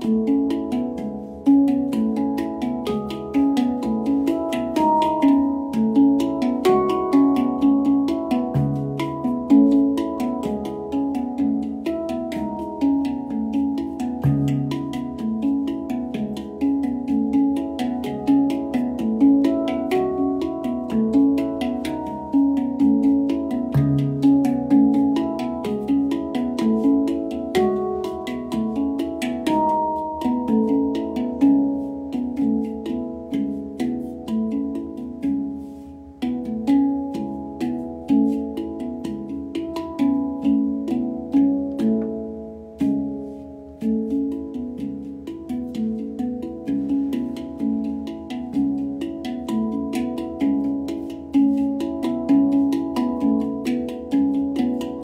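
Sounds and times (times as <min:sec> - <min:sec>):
handpan notes: 0:00.0 - 0:55.0.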